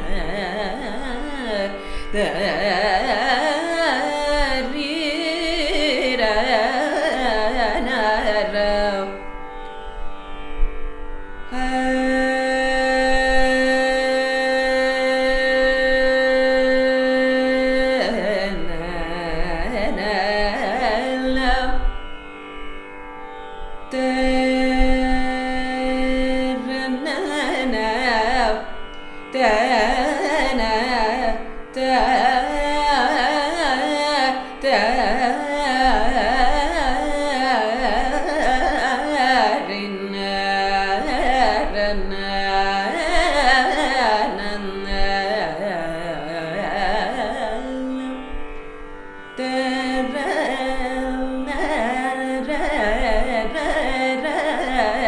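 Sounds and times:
woman singing ornamented notes: 0.0 - 9.2, 11.5 - 21.8, 23.9 - 28.7, 29.4 - 48.2, 49.4 - 55.0.

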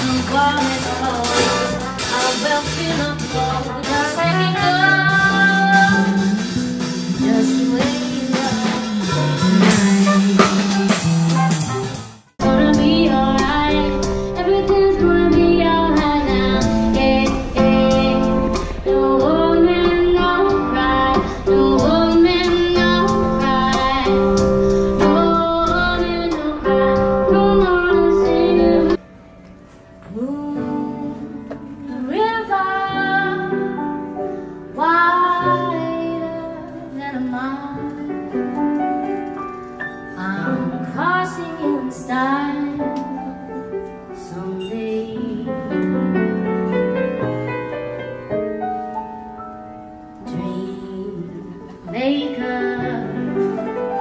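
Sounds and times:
trumpet: 0.0 - 6.7, 8.3 - 12.6
woman singing jazz: 0.0 - 11.0, 12.4 - 29.0, 30.0 - 39.3, 39.9 - 47.2, 50.2 - 54.0
electric guitar: 0.0 - 54.0
piano: 0.0 - 54.0.

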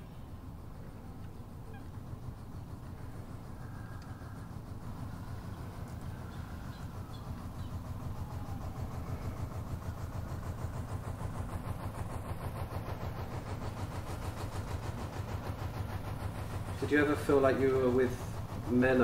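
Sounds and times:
boat engine rumbling: 0.0 - 19.0.

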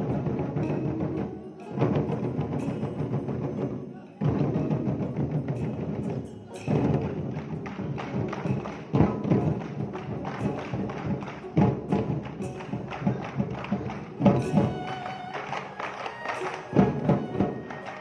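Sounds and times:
barrel drums ensemble rhythm: 0.0 - 18.0.

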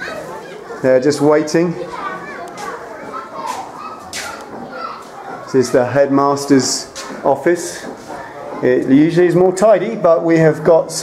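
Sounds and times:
children calling and talking: 0.0 - 11.0.

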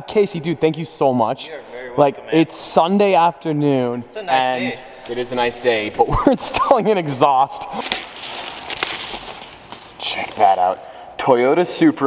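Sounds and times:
rustling handling noise: 7.7 - 10.5.

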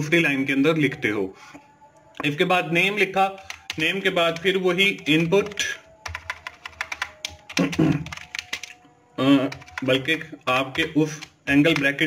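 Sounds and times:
keyboard keys clicking: 3.2 - 8.8, 9.5 - 12.0.

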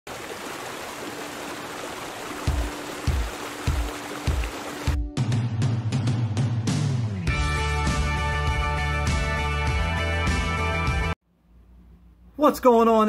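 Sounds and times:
water rushing over rocks: 0.1 - 5.0.

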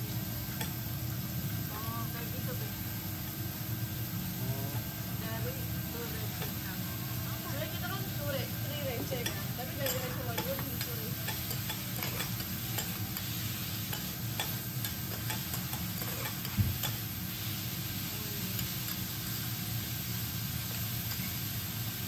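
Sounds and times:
food sizzling on griddle: 0.0 - 22.0
metal spatulas scraping: 9.2 - 13.3, 13.9 - 17.0.

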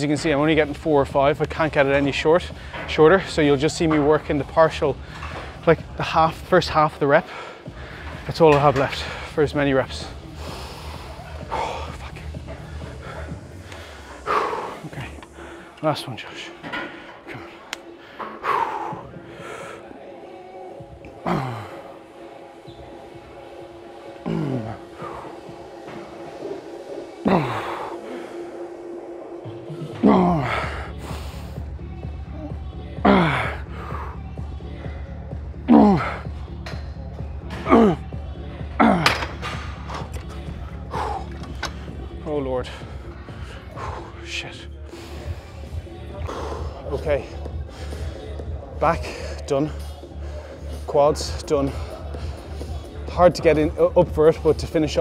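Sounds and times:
background music: 0.0 - 55.0
man grunting with effort: 24.2 - 24.9, 27.2 - 28.0, 29.9 - 30.8, 33.0 - 33.6, 35.7 - 36.3.

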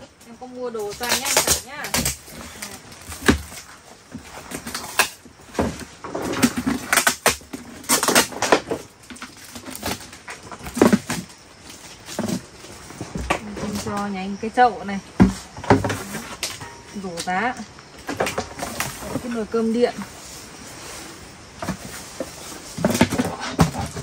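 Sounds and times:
plastic film crinkling: 0.8 - 3.9
plastic basins knocking: 15.1 - 17.3, 21.6 - 24.0.

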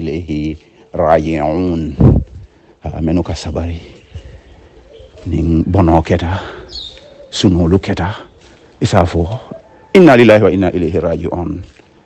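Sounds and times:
man reciting: 5.0 - 11.8.

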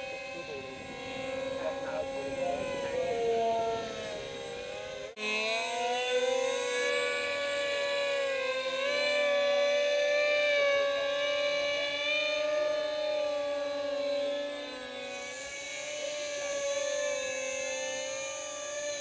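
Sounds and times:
model jets whining: 0.0 - 19.0.

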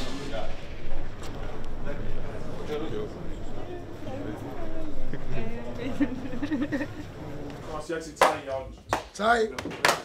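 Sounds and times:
sharp claps: 8.2 - 10.0.

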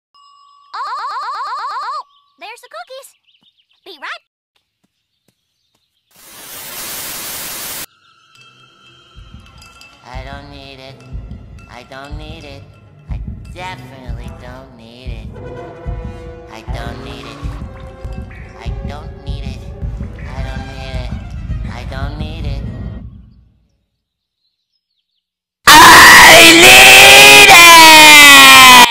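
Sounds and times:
distorted cartoon voice screaming: 25.7 - 28.9.

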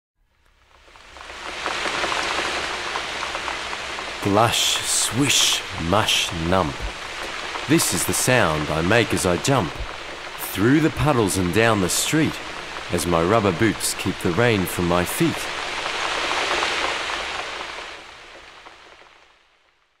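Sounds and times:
rain falling: 0.3 - 20.0.

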